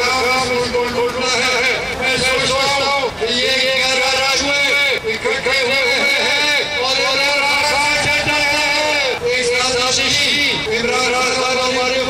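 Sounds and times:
man speaking into a microphone: 0:00.0 - 0:12.0.

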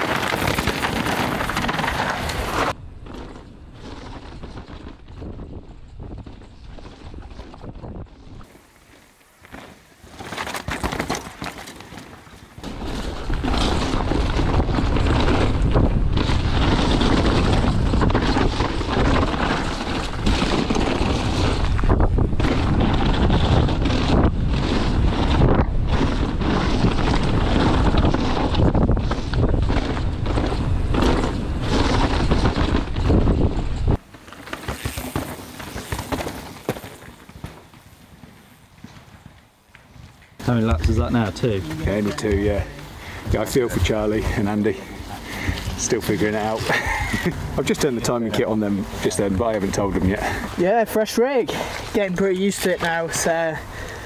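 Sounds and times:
bike tyre noise on dirt: 0:00.0 - 0:54.0
bike rattling knocks: 0:09.5 - 0:50.5
wind rushing over microphone: 0:12.7 - 0:34.1.

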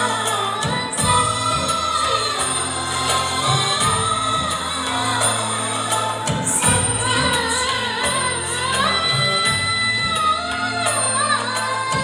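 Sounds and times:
backing track over loudspeakers: 0:00.0 - 0:12.0
woman singing into a microphone: 0:00.0 - 0:12.0.

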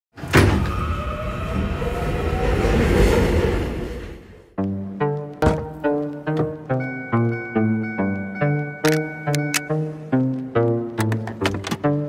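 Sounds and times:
subway train rumble: 0:00.2 - 0:04.6.

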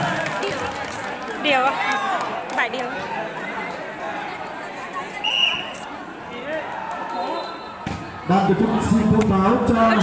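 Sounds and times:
spectators murmuring: 0:00.0 - 0:10.0.

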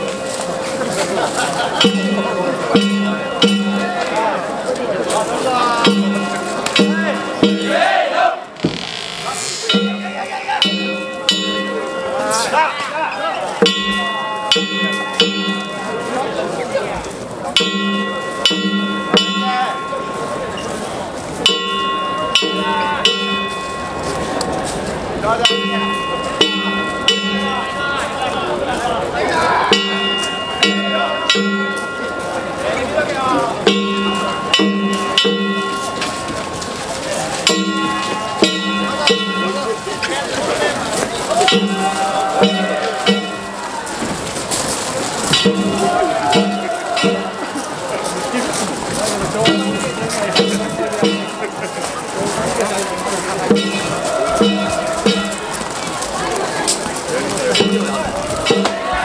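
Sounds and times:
voices shouting: 0:00.0 - 0:08.6, 0:25.0 - 0:59.0
gongs and drums struck: 0:01.8 - 0:04.2, 0:05.7 - 0:12.5, 0:13.6 - 0:16.0, 0:17.6 - 0:20.2, 0:21.4 - 0:24.4, 0:25.4 - 0:27.8, 0:29.7 - 0:32.2, 0:33.6 - 0:36.5, 0:37.4 - 0:39.8, 0:41.4 - 0:44.2, 0:45.2 - 0:47.7, 0:49.2 - 0:51.7, 0:53.4 - 0:55.7, 0:57.5 - 0:59.0.

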